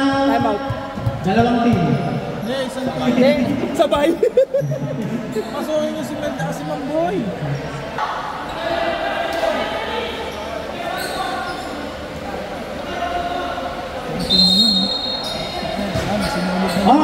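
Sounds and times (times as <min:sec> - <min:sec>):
voices in background: 0:00.0 - 0:17.0.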